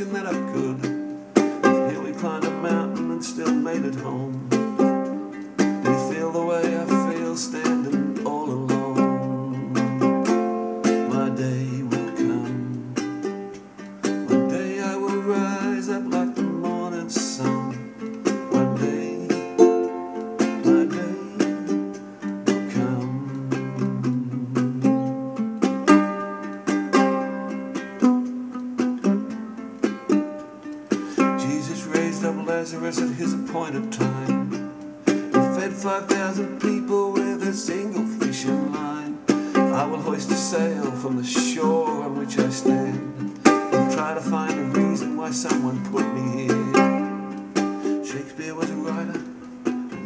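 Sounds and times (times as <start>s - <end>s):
ukulele fingerpicking and strumming: 0.0s - 50.0s.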